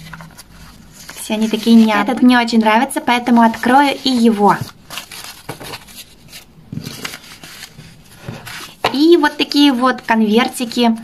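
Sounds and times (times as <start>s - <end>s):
paper envelopes rustling: 0.0s - 11.0s.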